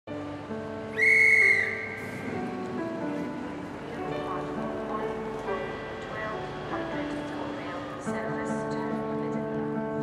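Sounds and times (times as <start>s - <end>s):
soft background music: 0.1s - 10.0s
high-pitched whistle blast: 0.9s - 2.2s.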